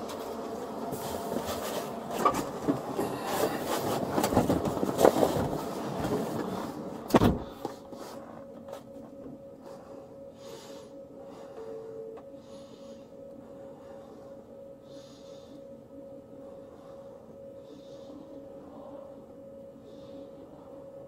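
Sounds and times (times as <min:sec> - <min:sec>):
steady cabin hum: 0:00.0 - 0:21.0
loud thump: 0:07.1 - 0:07.5.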